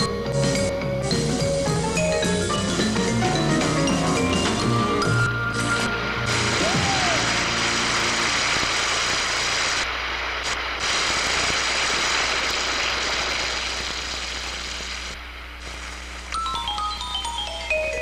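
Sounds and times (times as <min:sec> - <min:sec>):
audience applauding: 0:05.6 - 0:09.8.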